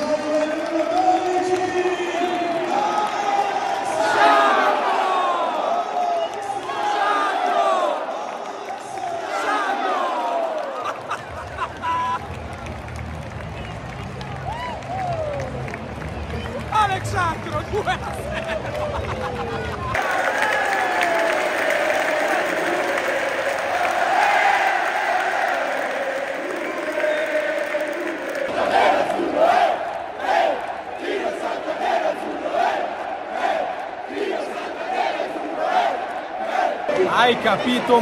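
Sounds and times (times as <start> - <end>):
crowd chanting: 2.7 - 10.6, 20.0 - 38.0
crowd singing and cheering: 18.4 - 38.0
steady claps: 19.9 - 30.8.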